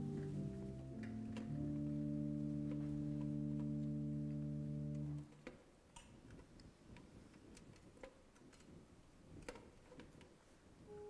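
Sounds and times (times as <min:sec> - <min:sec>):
sustained organ chord: 0:00.0 - 0:05.3.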